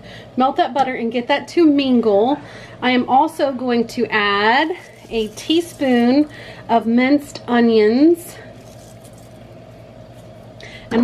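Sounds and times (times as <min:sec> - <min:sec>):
low steady hum: 0:00.0 - 0:11.0
woman speaking: 0:00.4 - 0:08.5
short breath: 0:10.6 - 0:10.9.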